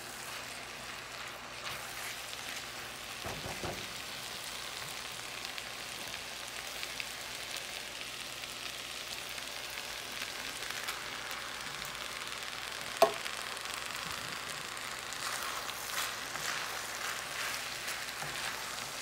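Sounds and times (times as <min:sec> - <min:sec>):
food sizzling in a frying pan: 0:00.0 - 0:19.0.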